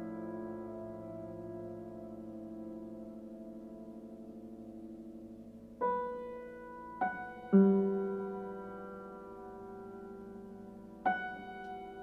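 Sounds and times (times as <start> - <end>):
held piano chord ringing: 0.0 - 12.0.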